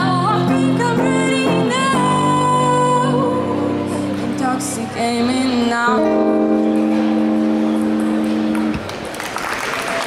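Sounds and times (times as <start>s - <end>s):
audience applause: 8.7s - 10.0s.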